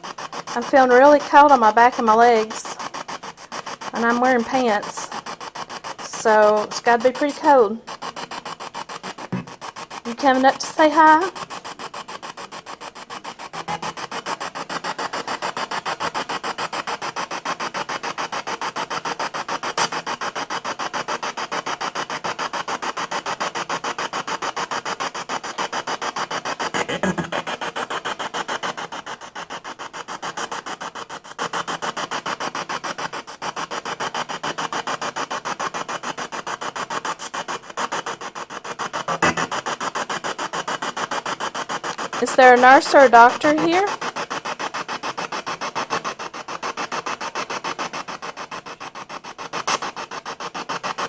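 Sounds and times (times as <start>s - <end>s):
chopped radio static and fragments: 39.1s - 39.6s.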